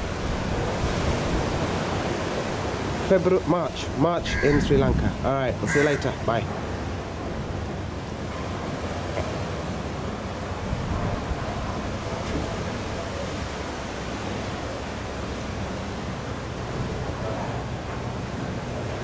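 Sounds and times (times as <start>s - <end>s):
ocean surf: 0.0s - 19.0s
wind blowing across microphone: 0.0s - 19.0s.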